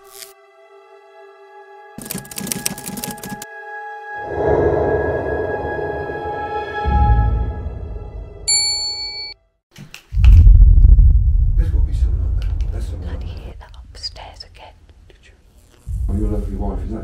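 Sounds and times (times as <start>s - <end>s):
loud low rumble: 4.2s - 7.8s, 10.2s - 13.0s.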